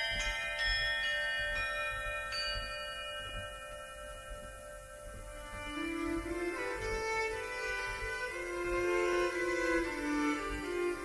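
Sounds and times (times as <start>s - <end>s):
tuned bells ringing: 0.0s - 10.9s.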